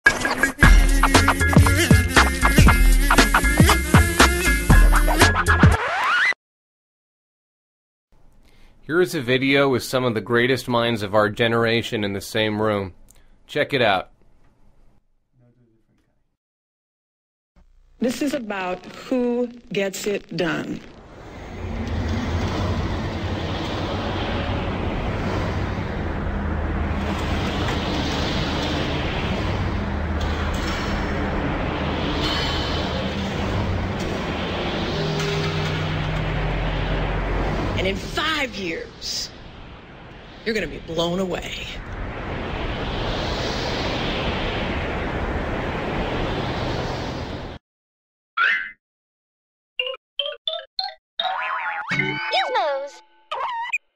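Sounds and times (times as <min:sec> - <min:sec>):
low hum: 0:17.6 - 0:47.4
low rumble: 0:17.6 - 0:47.6
hiss: 0:27.2 - 0:36.0, 0:42.3 - 0:45.0
cartoon logo jingle: 0:51.2 - 0:53.7.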